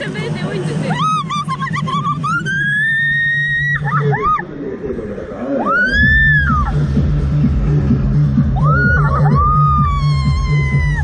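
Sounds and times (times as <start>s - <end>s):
steady low hum: 0.0s - 11.0s
woman screaming: 0.9s - 4.4s, 8.6s - 11.0s.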